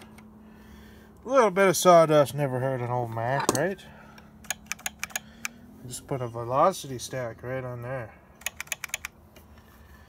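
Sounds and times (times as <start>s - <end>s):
quick sharp clicks: 4.4s - 5.6s.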